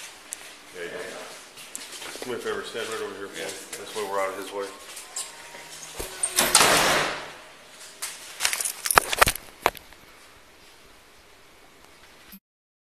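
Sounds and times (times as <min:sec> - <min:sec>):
faint room noise: 0:00.0 - 0:12.3.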